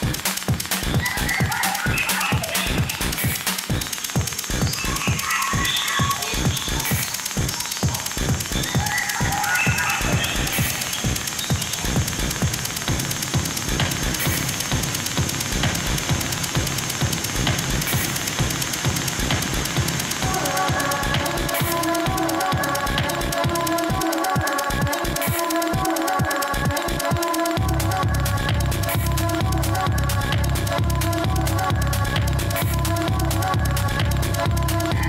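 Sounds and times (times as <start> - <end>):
noisy synth textures: 0.0 - 35.0
pulsing synth riff: 0.0 - 35.0.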